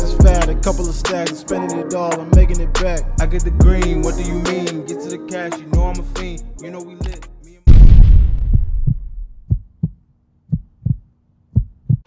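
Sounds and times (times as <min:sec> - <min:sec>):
heartbeat thumps: 0:03.6 - 0:03.9, 0:07.7 - 0:12.0.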